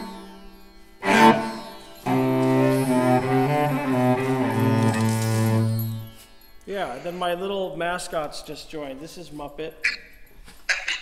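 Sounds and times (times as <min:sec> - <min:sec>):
bowed cello: 0:01.0 - 0:06.2.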